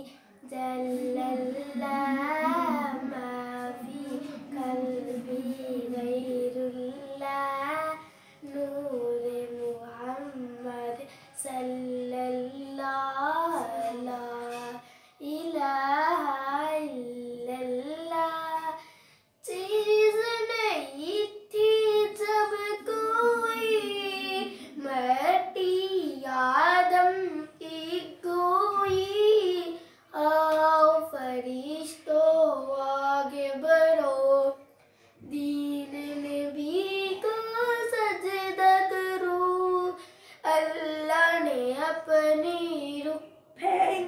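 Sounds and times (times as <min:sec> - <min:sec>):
girl singing unaccompanied: 0:00.0 - 0:44.0.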